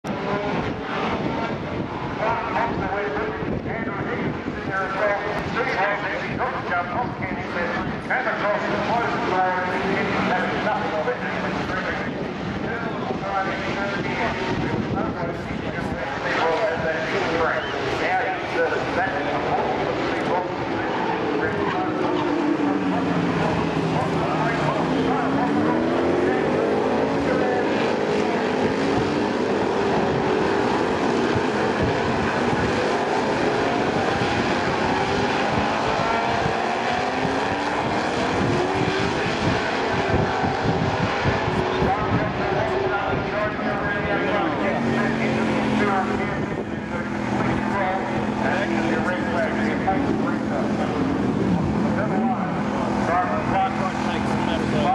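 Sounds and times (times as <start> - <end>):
race car engines: 0.0 - 54.9.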